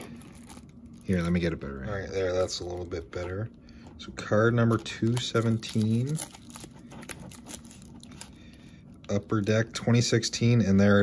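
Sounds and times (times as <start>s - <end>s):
paper mailer rustling and crinkling: 0.0s - 10.1s.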